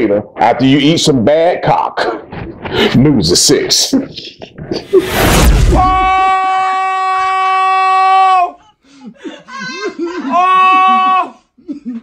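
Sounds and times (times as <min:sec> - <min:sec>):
man wailing in falsetto: 0:09.5 - 0:11.4.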